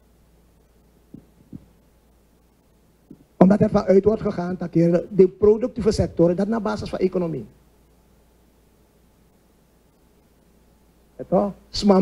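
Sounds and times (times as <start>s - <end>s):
steady low hum: 0.0s - 12.0s
soft thumps: 1.1s - 1.8s, 3.0s - 3.3s.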